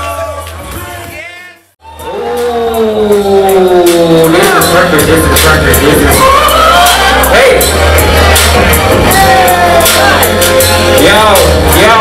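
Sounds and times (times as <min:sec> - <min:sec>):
hip-hop beat: 0:00.0 - 0:12.0.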